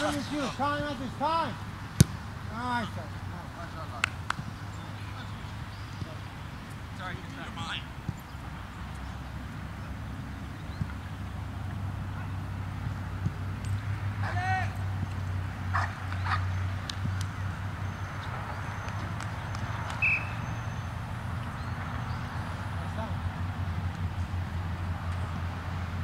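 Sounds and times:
distant players shouting: 0:00.0 - 0:04.0, 0:14.2 - 0:19.0.

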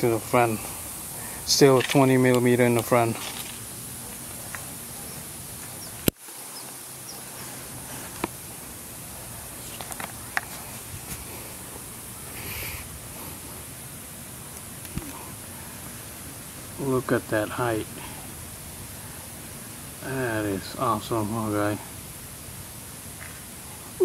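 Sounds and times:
steady background hiss: 0:00.0 - 0:24.0.

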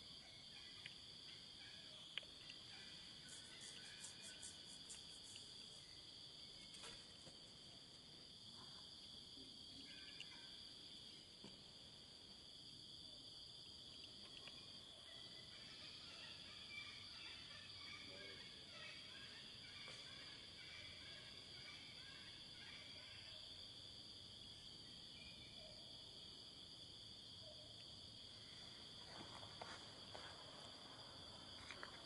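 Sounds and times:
high-pitched insect chorus: 0:00.0 - 0:32.0.

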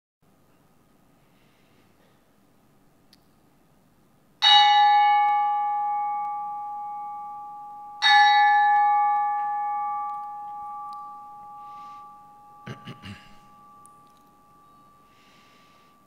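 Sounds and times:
metal bell ringing: 0:04.4 - 0:16.0.

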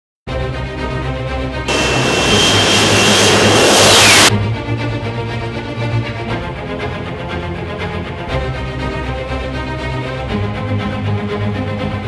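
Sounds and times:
high steady jet whine: 0:01.7 - 0:04.3
jet engine roar: 0:01.7 - 0:04.3.

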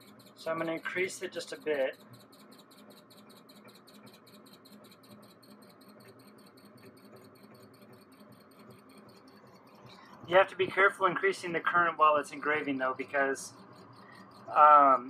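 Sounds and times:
laser engraver head ticking: 0:00.0 - 0:15.0
low steady hum: 0:00.0 - 0:15.0.

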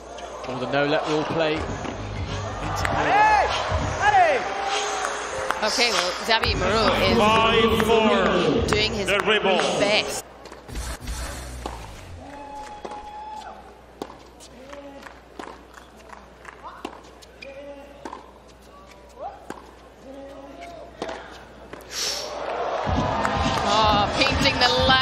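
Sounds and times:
loud crowd voices: 0:00.0 - 0:13.9, 0:17.8 - 0:25.0
music: 0:01.6 - 0:05.6, 0:22.9 - 0:25.0
tennis ball hits and bounces: 0:11.6 - 0:13.1, 0:14.0 - 0:21.8.

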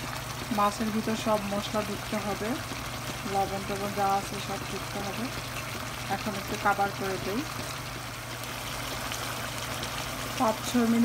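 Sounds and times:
curry simmering in a pan: 0:00.0 - 0:11.0.

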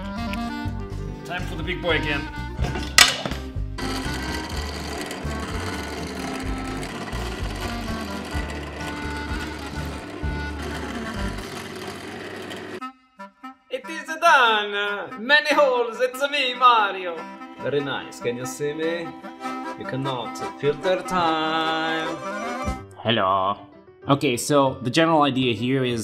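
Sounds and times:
drill press drilling steel: 0:03.8 - 0:12.8.

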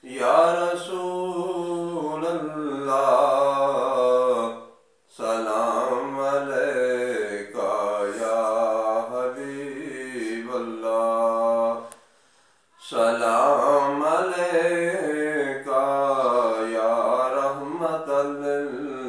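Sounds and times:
man singing devotional song: 0:00.0 - 0:19.0.

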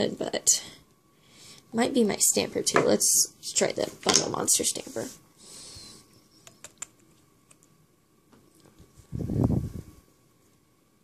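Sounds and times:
soft rustle: 0:08.4 - 0:10.7.

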